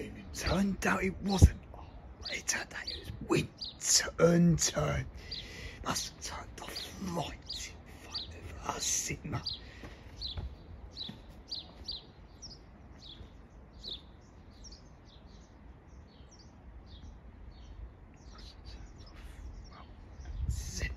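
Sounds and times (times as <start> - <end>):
small birds chirping: 0.0 - 20.9.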